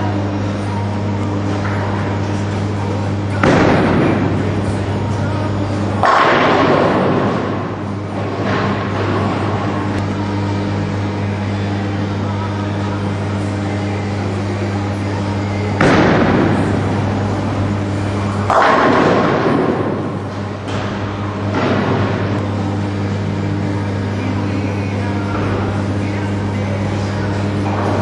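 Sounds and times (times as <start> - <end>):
steady low hum: 0.0 - 28.0
bowling pins crashing: 3.3 - 10.0, 15.8 - 22.4.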